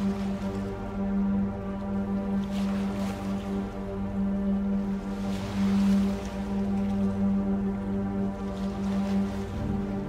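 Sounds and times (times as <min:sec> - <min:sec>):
music with held low note: 0:00.0 - 0:10.0.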